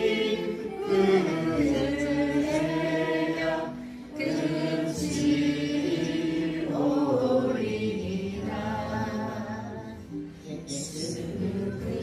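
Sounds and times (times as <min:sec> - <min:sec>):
person singing worship song: 0:00.0 - 0:12.0
soft accompaniment: 0:00.0 - 0:12.0.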